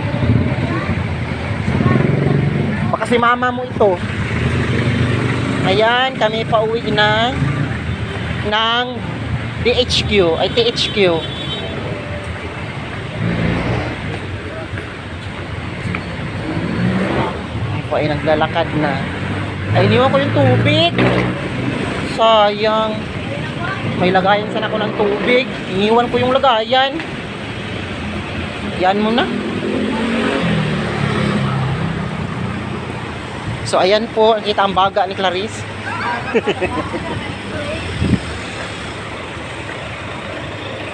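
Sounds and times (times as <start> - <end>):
road noise: 0.0 - 40.9
vehicle engines rumbling by: 0.0 - 40.9.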